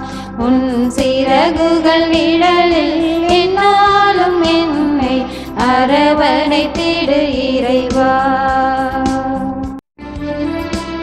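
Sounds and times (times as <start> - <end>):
women singing a hymn: 0.0 - 9.5
keyboard accompaniment: 0.0 - 11.0.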